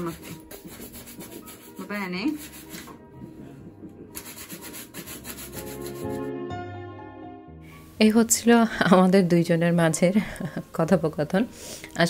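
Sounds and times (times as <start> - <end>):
brush scrubbing leather shoe: 0.0 - 2.9, 4.2 - 6.2
background music: 0.0 - 12.0.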